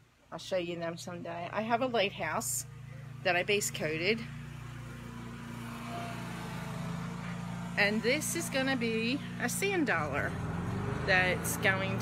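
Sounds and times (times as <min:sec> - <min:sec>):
lawn mower engine running: 0:01.5 - 0:12.0.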